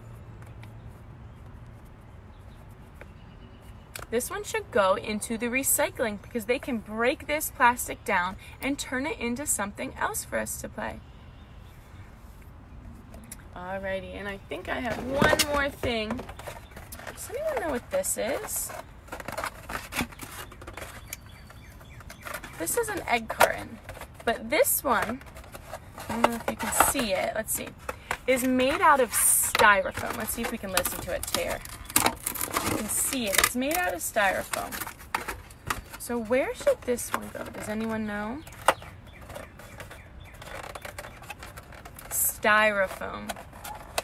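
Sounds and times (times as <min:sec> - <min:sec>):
styrofoam carton creaking: 0:14.2 - 0:44.0.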